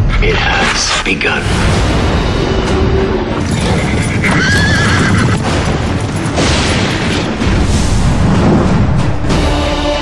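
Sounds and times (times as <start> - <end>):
dramatic trailer score: 0.0 - 10.0
horse whinnying: 3.4 - 5.5.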